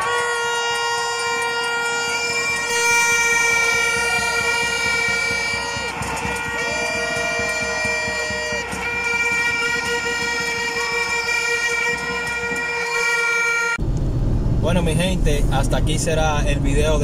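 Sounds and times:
protesting crowd: 0:00.0 - 0:13.4
horns blaring: 0:00.0 - 0:13.8.

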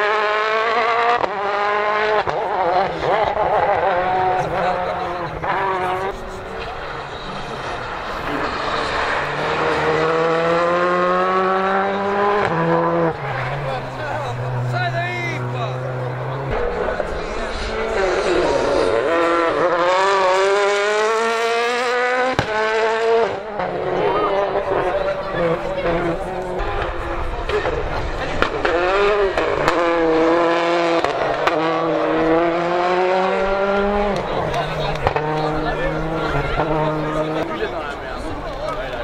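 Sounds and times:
rally car engine revving: 0:00.0 - 0:39.0.

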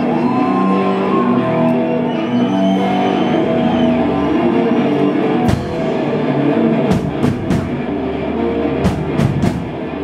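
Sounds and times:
live rock band music: 0:00.0 - 0:10.0.

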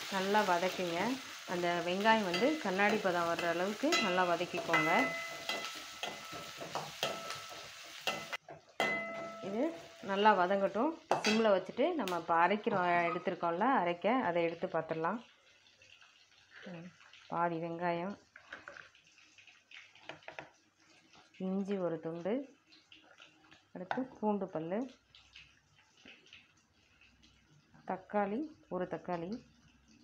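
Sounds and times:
onions sizzling in hot oil: 0:00.0 - 0:18.2
spatula scraping against pan: 0:02.2 - 0:08.4.

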